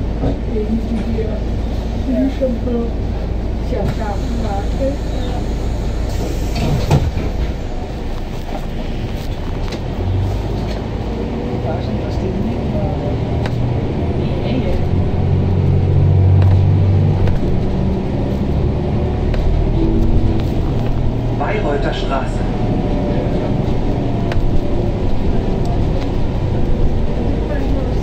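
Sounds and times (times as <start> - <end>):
bus engine running under load: 0.0 - 28.0.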